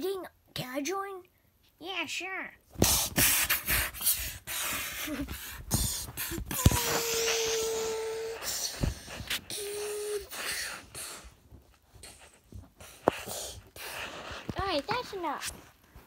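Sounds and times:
plush toys scuffing on microphone: 0:02.7 - 0:16.0.

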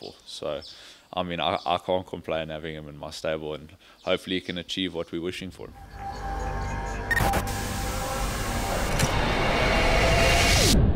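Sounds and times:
sharp glitchy hit: 0:07.0 - 0:10.9
rushing noise swell: 0:07.1 - 0:10.9.

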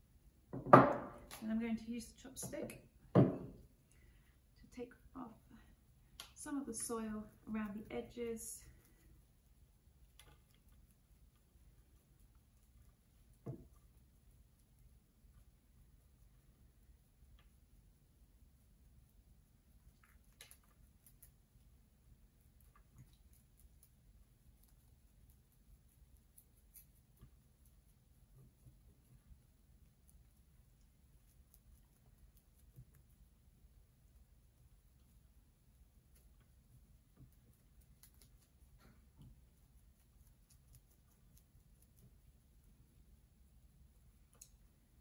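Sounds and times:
soft knock: 0:00.5 - 0:01.2, 0:03.1 - 0:03.6
chopstick scratching soil: 0:36.1 - 0:42.2.

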